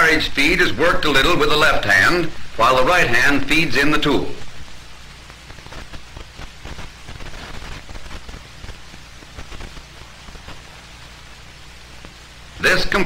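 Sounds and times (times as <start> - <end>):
scattered crackles: 0.0 - 13.0
steady hiss: 0.0 - 13.0.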